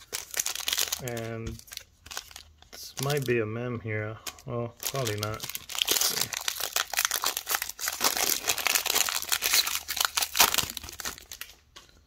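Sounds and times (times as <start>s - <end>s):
foil wrapper crinkling and tearing: 0.0s - 3.4s, 4.2s - 11.6s.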